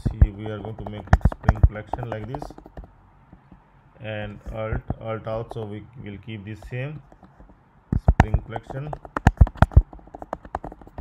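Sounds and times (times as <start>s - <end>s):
typing on computer keyboard: 0.0s - 2.9s, 7.0s - 11.0s.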